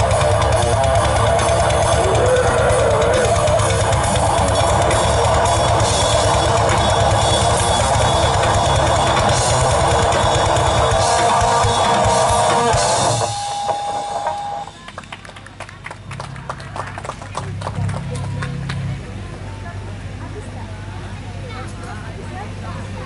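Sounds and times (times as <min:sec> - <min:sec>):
high guitar note ringing: 0:00.0 - 0:14.9
metal band playing: 0:00.0 - 0:14.9.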